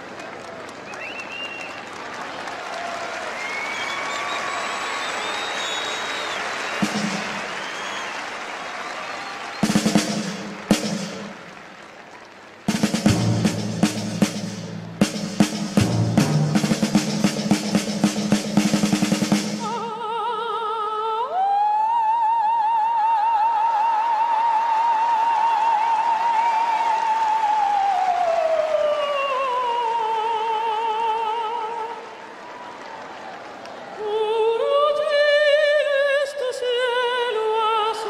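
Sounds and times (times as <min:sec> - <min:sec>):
crowd noise: 0:00.0 - 0:38.0
whistling: 0:00.2 - 0:02.5, 0:03.1 - 0:10.7
snare drum rolls: 0:03.3 - 0:11.9, 0:12.6 - 0:19.9.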